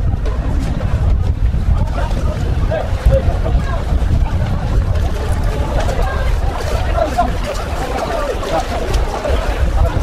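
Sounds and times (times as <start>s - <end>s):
crowd chatter and calls: 0.0s - 10.0s
wind rumbling on microphone: 0.0s - 10.0s.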